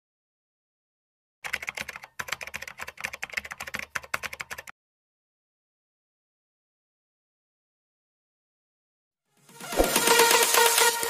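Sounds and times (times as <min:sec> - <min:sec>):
keyboard typing: 0:01.4 - 0:04.7.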